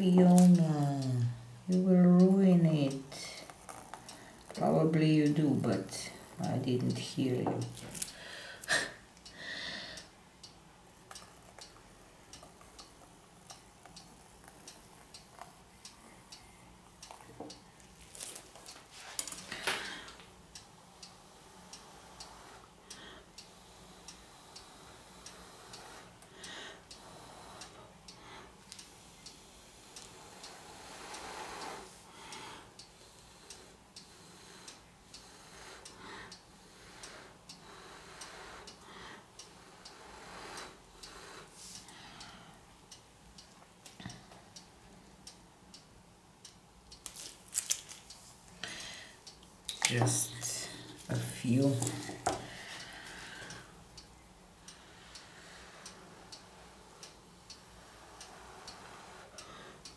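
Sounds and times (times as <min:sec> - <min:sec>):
faint ticking clicks: 0:00.0 - 0:59.9.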